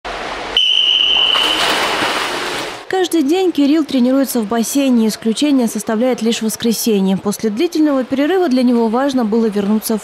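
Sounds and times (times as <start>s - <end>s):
swimmer splashing: 0.1s - 2.9s
high start signal tone: 0.6s - 1.8s.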